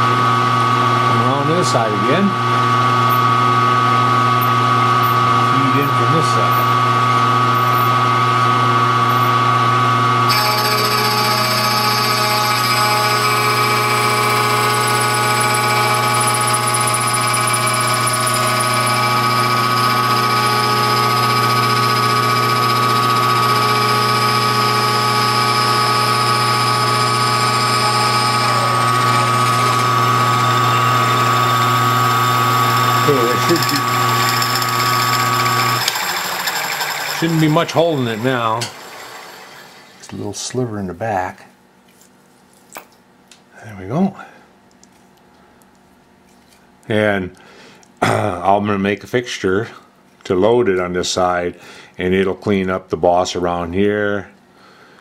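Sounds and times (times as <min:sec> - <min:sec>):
milling machine hum and whine: 0:00.0 - 0:40.5.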